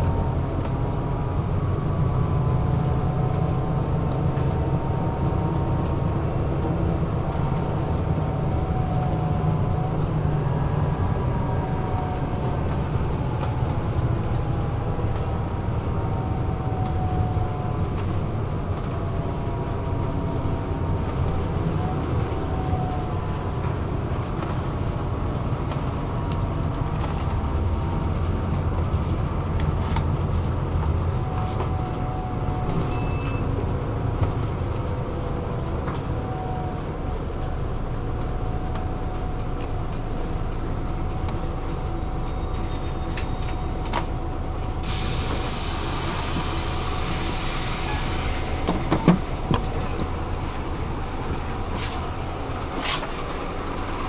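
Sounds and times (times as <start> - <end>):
bus engine and road rumble: 0.0 - 54.0
short squeal: 32.9 - 33.5
compressed air hissing: 44.8 - 49.3.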